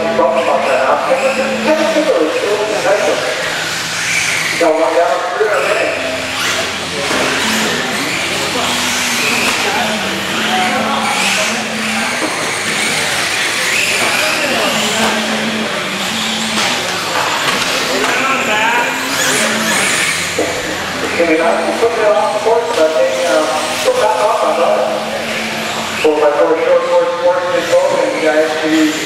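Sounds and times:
people's voices: 0.0s - 29.0s
rc car motors whining: 0.0s - 29.0s.

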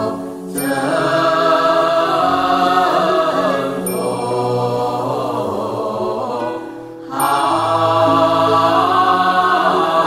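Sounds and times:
sustained accompaniment: 0.0s - 10.0s
voices chanting a mantra: 0.0s - 10.0s.

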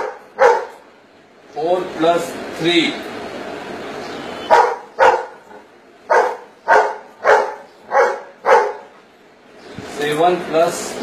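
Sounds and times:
dog barking: 0.0s - 0.8s, 4.4s - 9.0s.

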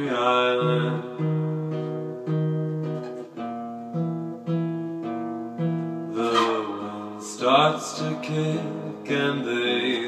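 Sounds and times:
acoustic guitar strumming chords: 0.0s - 10.0s.

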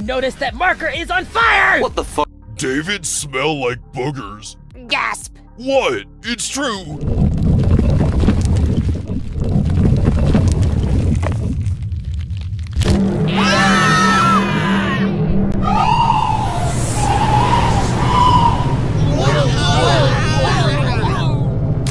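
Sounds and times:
deep rumble: 2.3s - 21.9s
cartoon characters screaming: 13.3s - 21.3s.

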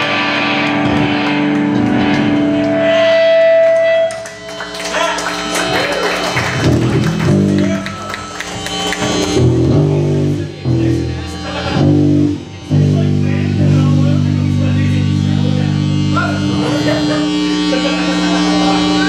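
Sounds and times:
electric guitar playing: 0.0s - 19.0s.

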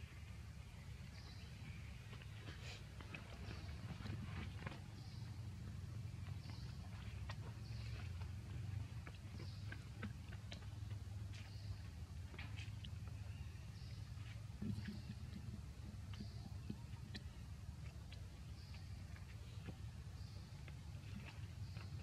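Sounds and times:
steady low rumble: 0.0s - 22.0s
monkeys chewing fruit: 2.0s - 22.0s.

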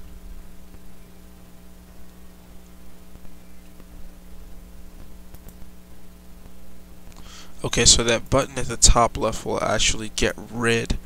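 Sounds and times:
background hiss: 0.0s - 11.0s
electrical hum: 0.0s - 11.0s
faint clicks: 5.0s - 5.6s.

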